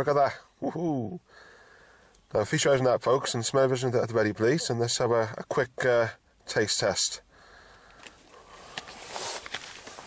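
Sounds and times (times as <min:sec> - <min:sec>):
cardboard box rustling: 0:08.8 - 0:10.0.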